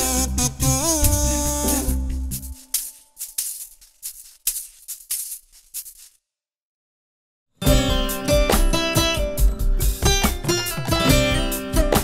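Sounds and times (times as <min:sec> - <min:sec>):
shaker playing quick strokes: 0:01.0 - 0:06.2.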